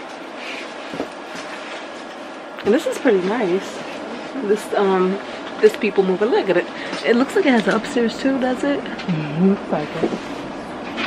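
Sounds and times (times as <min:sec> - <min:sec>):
train running noise inside carriage: 0:00.0 - 0:11.0.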